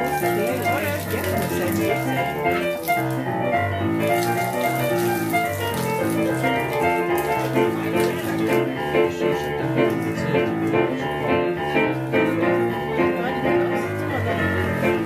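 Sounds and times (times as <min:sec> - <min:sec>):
blues piano playing: 0:00.0 - 0:15.0.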